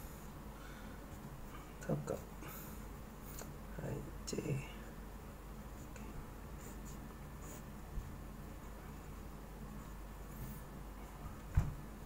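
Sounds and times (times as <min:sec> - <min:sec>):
pen scratching on paper: 0:06.6 - 0:07.7.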